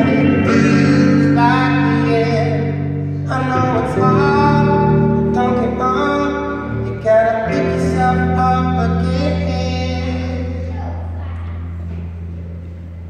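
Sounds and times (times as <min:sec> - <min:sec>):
electric guitar chords: 0:00.0 - 0:13.0.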